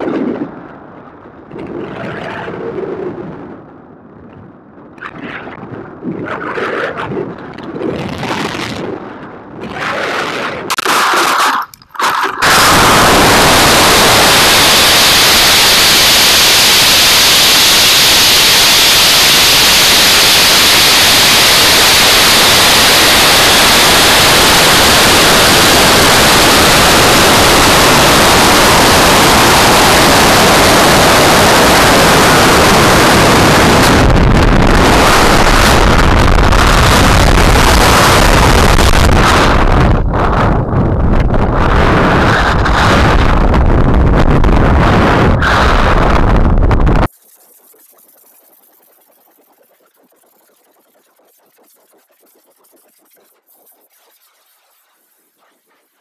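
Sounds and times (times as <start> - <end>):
rush of air over microphone: 0.0 - 56.0.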